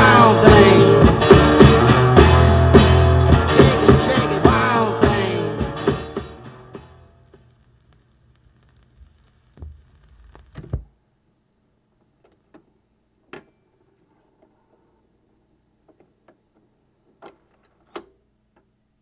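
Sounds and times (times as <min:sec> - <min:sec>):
vinyl groove and surface noise: 0:00.0 - 0:10.9
thumps: 0:07.3 - 0:11.0.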